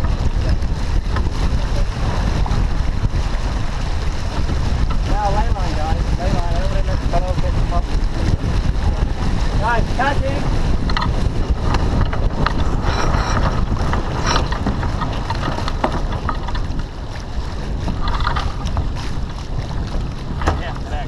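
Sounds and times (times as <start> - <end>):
water rushing along hull: 0.0 - 21.0
wind buffeting microphone: 0.0 - 21.0.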